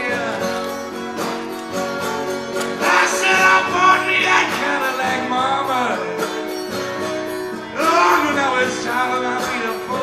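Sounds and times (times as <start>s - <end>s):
acoustic guitar country blues: 0.0s - 10.0s
person singing: 2.7s - 6.6s, 7.6s - 10.0s.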